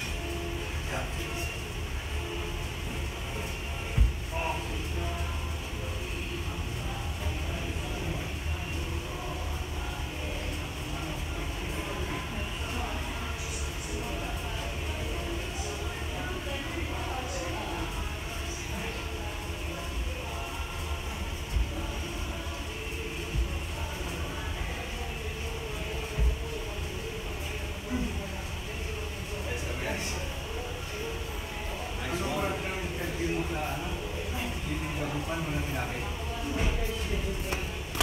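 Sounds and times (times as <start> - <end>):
faint background music: 0.0 - 38.0.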